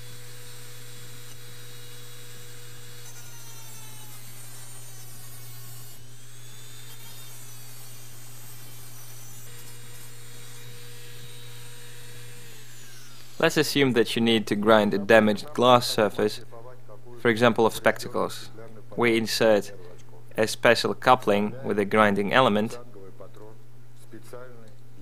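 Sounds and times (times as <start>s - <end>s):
mini drill motor whine: 0.0s - 13.5s.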